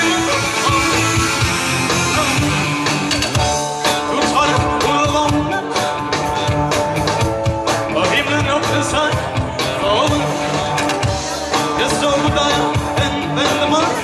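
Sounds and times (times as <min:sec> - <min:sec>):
electric guitar: 0:00.0 - 0:14.0
live glam rock band: 0:00.0 - 0:14.0
steady drum beat: 0:00.0 - 0:14.0.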